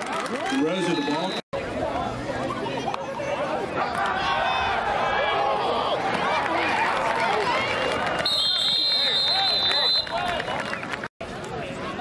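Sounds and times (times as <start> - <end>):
crowd shouting and cheering: 0.0 - 12.0
referee whistle blast: 8.2 - 10.2.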